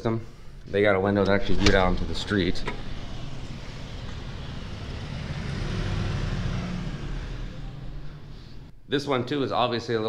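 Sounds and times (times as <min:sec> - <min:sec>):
street traffic: 0:00.0 - 0:08.9
vehicle passing: 0:01.3 - 0:08.8.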